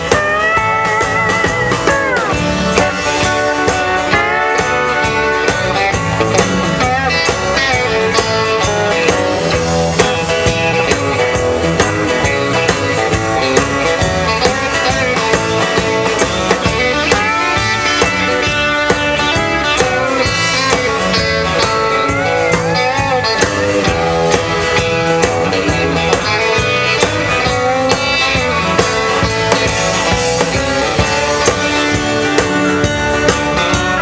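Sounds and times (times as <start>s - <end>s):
drums with steady beat: 0.0s - 34.0s
guitars: 0.0s - 34.0s.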